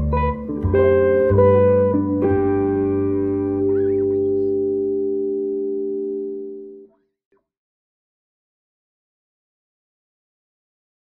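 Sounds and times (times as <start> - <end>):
electric guitar chord ringing out: 0.0 - 6.9.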